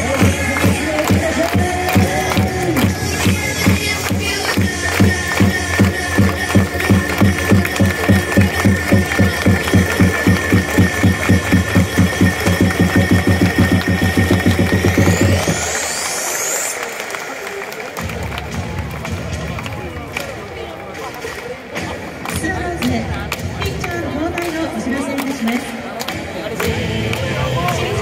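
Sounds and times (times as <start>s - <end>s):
electronic music over loudspeakers: 0.0s - 28.0s
rising sweep: 10.4s - 18.0s.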